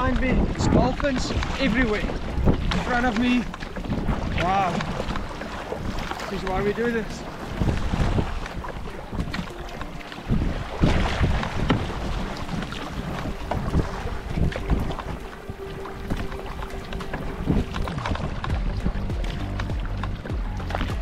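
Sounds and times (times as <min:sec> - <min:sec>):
kayak paddle splashing: 0:00.0 - 0:21.0
wind buffeting microphone: 0:00.0 - 0:21.0.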